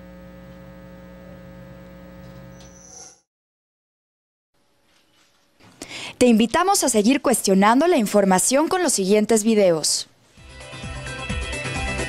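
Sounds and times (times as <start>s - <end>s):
electrical mains hum: 0.0s - 2.8s.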